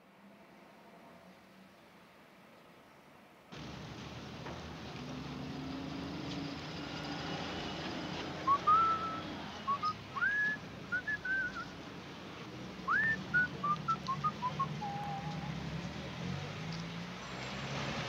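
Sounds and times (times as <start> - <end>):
person whistling: 8.5 - 11.7, 12.9 - 15.5.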